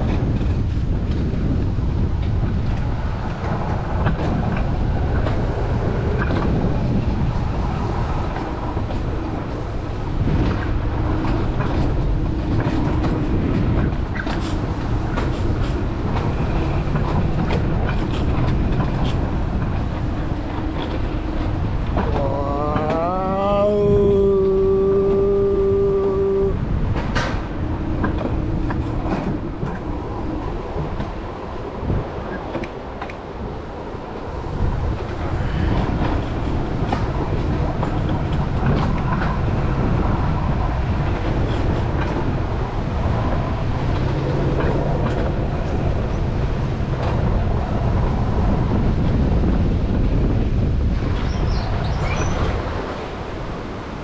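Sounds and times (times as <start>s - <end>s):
coaster wheels rumbling on rails: 0.0s - 54.0s
wind on microphone: 0.0s - 54.0s
long rising tone: 22.0s - 26.7s.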